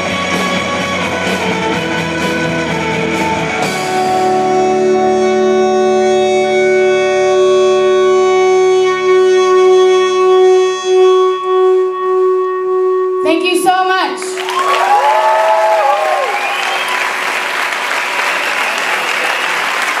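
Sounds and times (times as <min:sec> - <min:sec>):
band full chord: 0:00.0 - 0:13.2.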